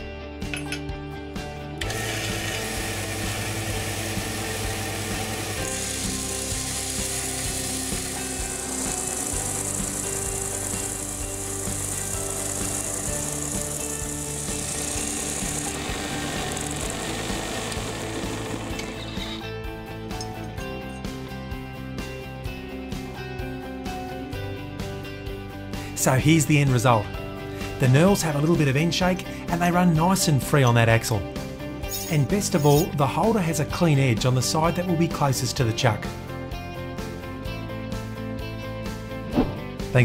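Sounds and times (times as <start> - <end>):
belt sander running: 1.8 - 19.5
steel grinding on sanding belt: 1.9 - 19.4.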